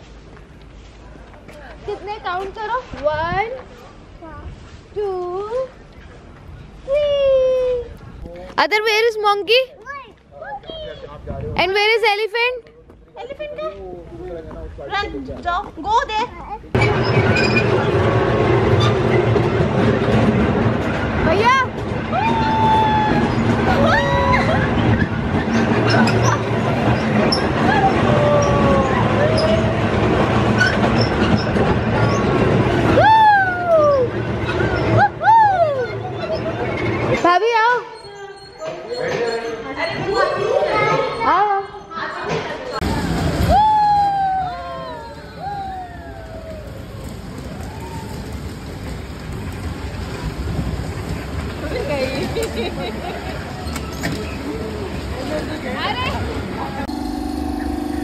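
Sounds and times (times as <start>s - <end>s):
toy train rumbling on track: 16.8s - 33.0s, 44.8s - 58.0s
loud high sliding call: 56.8s - 58.0s.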